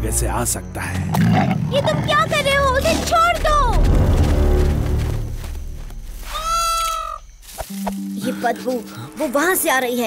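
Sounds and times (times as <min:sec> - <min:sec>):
peacock call: 0:06.2 - 0:07.4.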